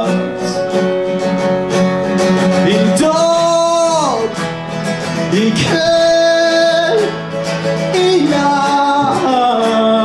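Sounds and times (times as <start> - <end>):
man singing: 0.0 - 1.6, 2.4 - 10.0
acoustic guitar: 0.0 - 10.0.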